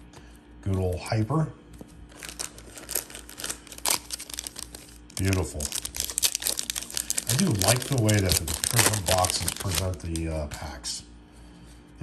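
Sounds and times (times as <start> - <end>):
foil pack crinkling: 2.0 - 10.8.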